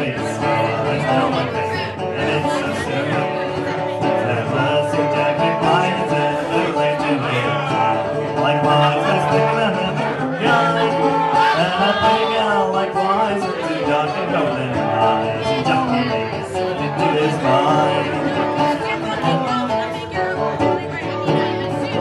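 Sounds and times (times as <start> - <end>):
man singing: 0.0 - 22.0
plucked string instrument strumming: 0.0 - 22.0.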